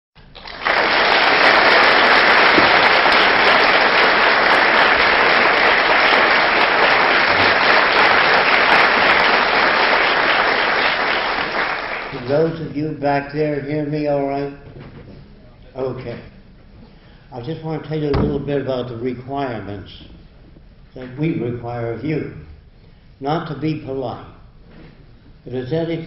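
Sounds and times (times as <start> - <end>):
audience applauding: 0.2 - 12.4.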